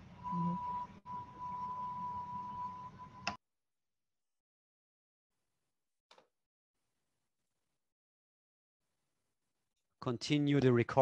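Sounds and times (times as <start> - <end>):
faint high tone: 0.1 - 3.4.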